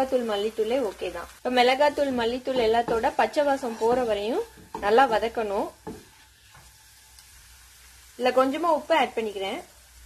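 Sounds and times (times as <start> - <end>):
woman speaking: 0.0 - 5.8, 8.2 - 9.7
spatula stirring in a pan: 0.0 - 9.1
masala frying in a pan: 0.0 - 10.0.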